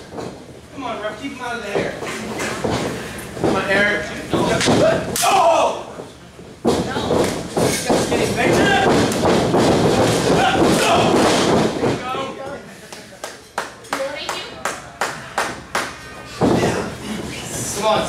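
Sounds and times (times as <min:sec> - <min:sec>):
people calling out: 0:05.1 - 0:05.9.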